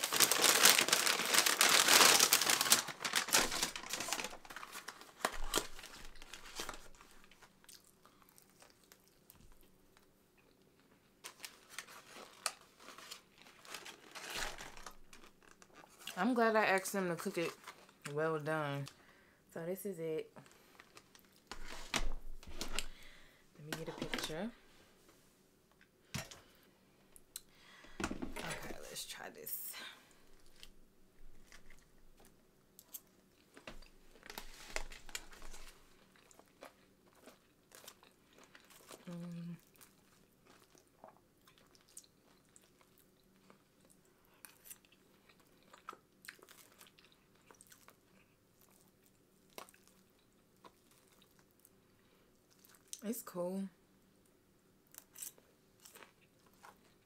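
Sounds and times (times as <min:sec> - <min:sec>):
person chewing crunchy food: 0:05.5 - 0:16.2, 0:35.1 - 0:53.0, 0:54.9 - 0:57.0.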